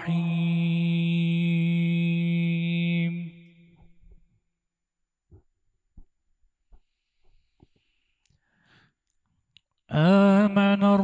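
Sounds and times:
faint breath sounds: 6.8 - 9.2.

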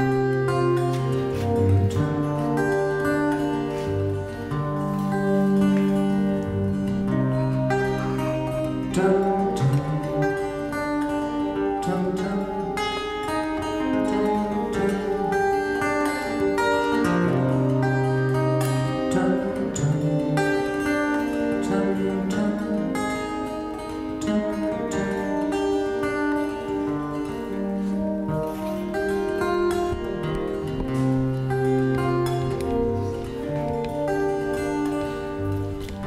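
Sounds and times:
acoustic guitars playing: 0.0 - 36.0.

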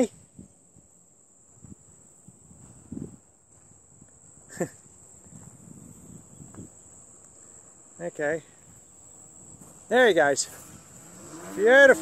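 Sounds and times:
insect chirring: 0.0 - 12.0
soft low rustles: 5.1 - 11.5.

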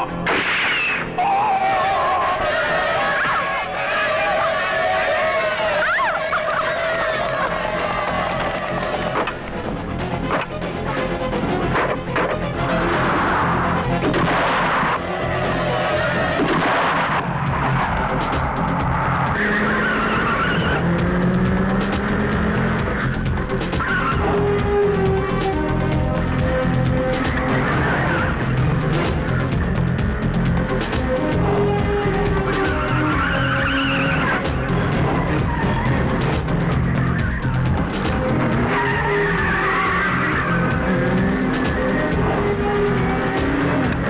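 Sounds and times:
film background score: 0.0 - 44.0
car tyres squealing: 0.2 - 9.5, 11.6 - 25.7, 27.2 - 29.3, 31.9 - 44.0.

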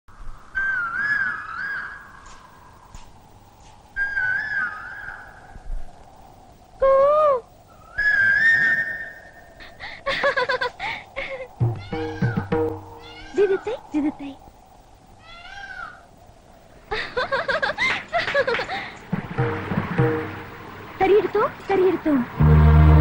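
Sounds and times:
bird-like melodic film song: 18.9 - 23.0.

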